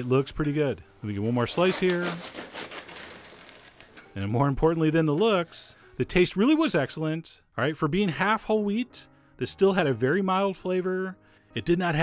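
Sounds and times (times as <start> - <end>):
knife sawing through bread crust: 1.6 - 3.8.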